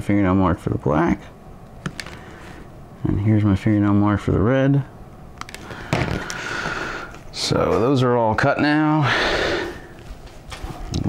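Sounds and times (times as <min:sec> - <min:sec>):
person breathing out: 0:05.6 - 0:07.2, 0:09.0 - 0:10.0.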